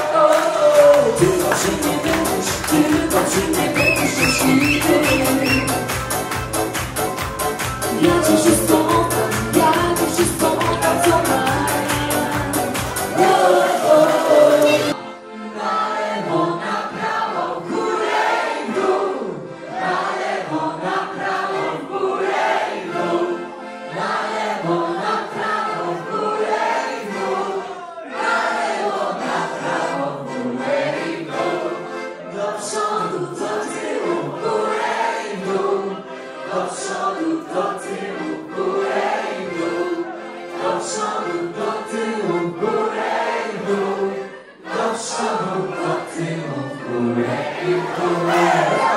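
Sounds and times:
group singing in chorus: 0.0 - 5.8, 7.8 - 48.9.

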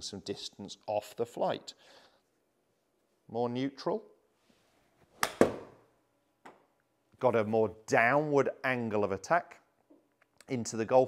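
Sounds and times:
club striking golf ball: 5.2 - 5.8.

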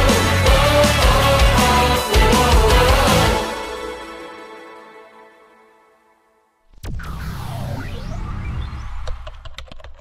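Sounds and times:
falling whoosh: 6.7 - 9.5
low rumble: 6.7 - 9.8.

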